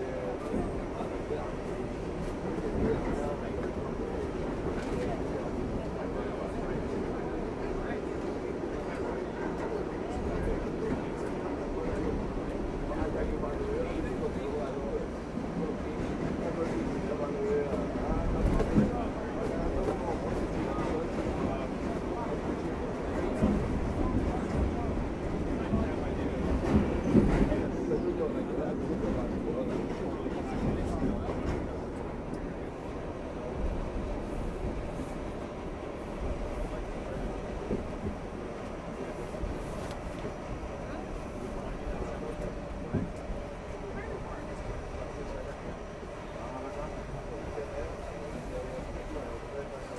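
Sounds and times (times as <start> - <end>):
subway wheels rumbling on rail: 0.0 - 49.9.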